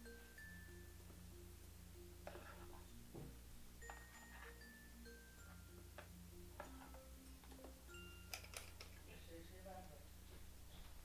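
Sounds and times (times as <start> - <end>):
soft mallet-like background music: 0.0 - 9.4.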